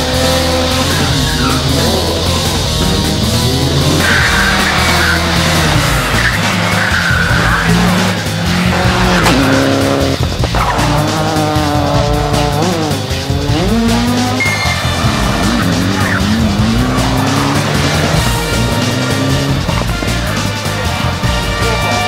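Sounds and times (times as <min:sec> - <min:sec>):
background music: 0:00.0 - 0:22.0
rally car engines revving: 0:00.0 - 0:22.0.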